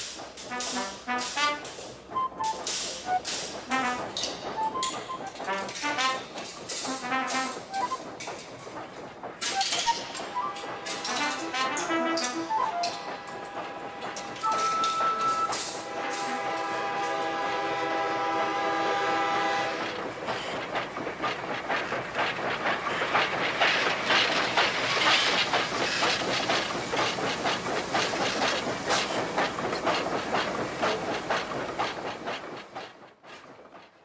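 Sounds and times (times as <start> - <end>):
train wheels clattering on rails: 0.0 - 34.0
train horn: 0.5 - 1.8, 3.7 - 4.3, 5.4 - 6.3, 6.9 - 7.8, 10.8 - 13.0, 14.4 - 19.9.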